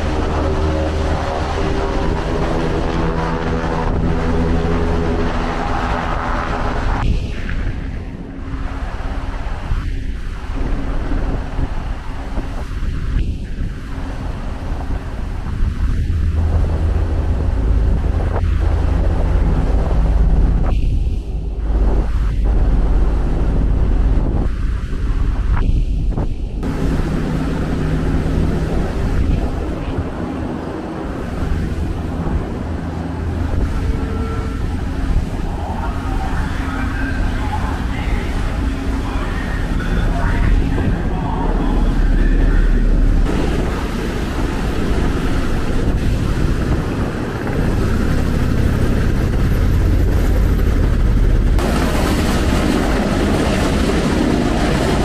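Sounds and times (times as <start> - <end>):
churning seawater: 0.0 - 55.0
wind buffeting microphone: 0.0 - 55.0
deep low rumble: 13.0 - 55.0.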